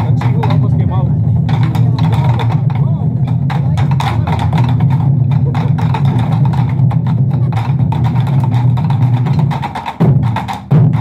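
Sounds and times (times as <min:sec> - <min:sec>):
loud unison drum strikes: 0:00.0 - 0:11.0
taiko drums fast drumming: 0:00.0 - 0:11.0.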